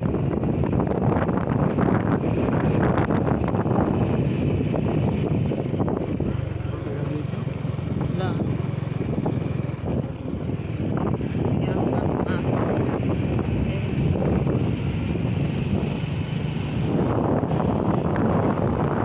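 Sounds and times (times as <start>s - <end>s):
motorcycle engine running: 0.0s - 19.0s
wind rushing over microphone: 0.0s - 19.0s.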